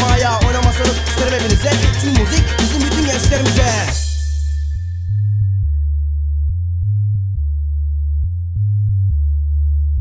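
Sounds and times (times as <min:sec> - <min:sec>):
deep bass line: 0:00.0 - 0:10.0.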